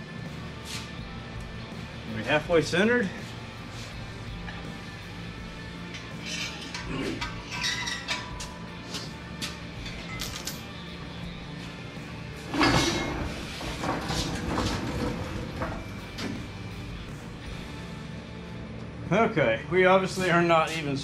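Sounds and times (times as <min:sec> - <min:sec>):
background music: 0:00.0 - 0:21.0
metal clank: 0:05.9 - 0:09.2, 0:12.5 - 0:16.5
hoist rolling on concrete: 0:12.4 - 0:16.4.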